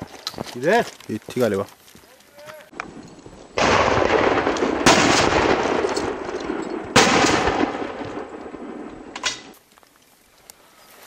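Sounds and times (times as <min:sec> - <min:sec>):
shotgun shots: 0:03.6 - 0:09.6.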